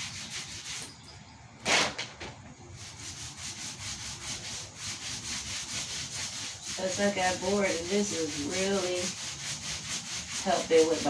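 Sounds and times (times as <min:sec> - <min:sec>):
paint roller rubbing on wall: 0:00.0 - 0:01.0, 0:02.8 - 0:11.0.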